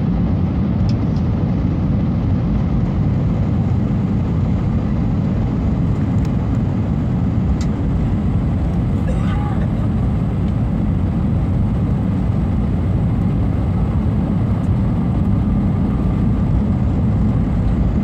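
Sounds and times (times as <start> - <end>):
airplane cabin engine rumble: 0.0 - 18.0
faint voice: 9.0 - 9.8.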